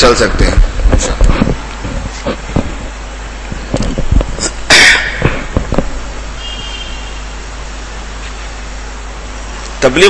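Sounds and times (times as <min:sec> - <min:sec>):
person sneezing: 0:04.7 - 0:05.4.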